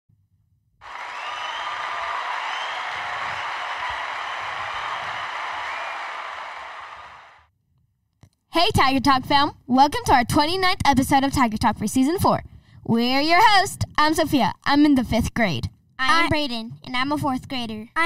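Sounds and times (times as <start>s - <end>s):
crowd applause: 0.8s - 7.4s.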